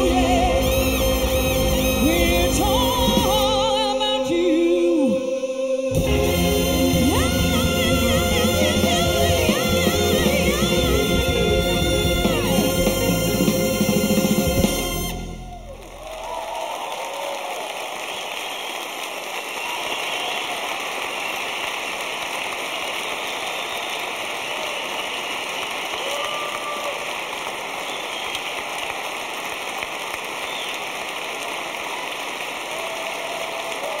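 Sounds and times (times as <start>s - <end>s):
audience applauding: 6.0s - 34.0s
scattered cheers: 15.2s - 34.0s.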